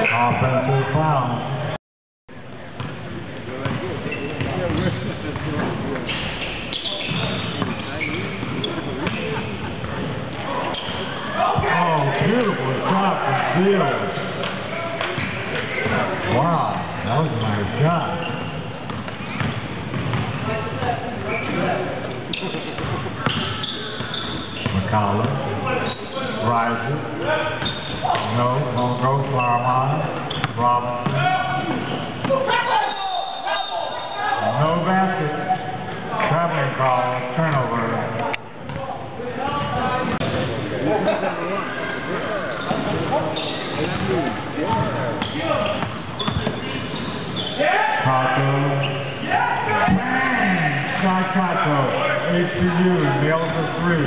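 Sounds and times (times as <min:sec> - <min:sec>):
voices in a hall: 0:00.0 - 0:54.0
basketball bouncing on hardwood: 0:19.4 - 0:20.2.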